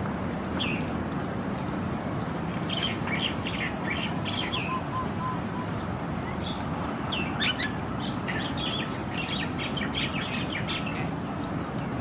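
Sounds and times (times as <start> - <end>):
small birds chirping: 0.0 - 1.3, 2.0 - 11.6
low outdoor rushing noise: 0.0 - 12.0.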